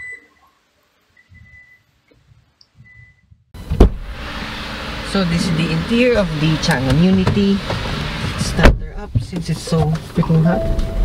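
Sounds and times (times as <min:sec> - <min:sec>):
faint electronic beeps: 0:00.0 - 0:01.9
loud thump: 0:03.6 - 0:04.2.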